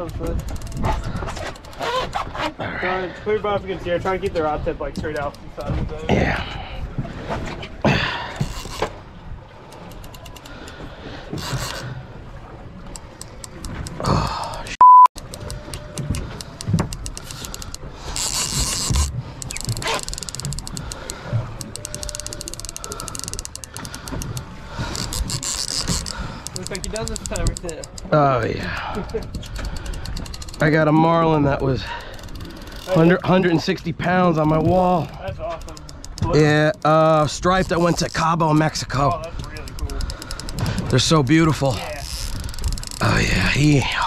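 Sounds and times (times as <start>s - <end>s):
fishing reel ticking rapidly: 0.0s - 0.9s, 15.2s - 28.2s, 28.8s - 31.0s, 31.8s - 33.2s, 34.9s - 38.2s, 38.9s - 40.7s, 41.6s - 43.2s
short loud beep: 14.8s - 15.1s.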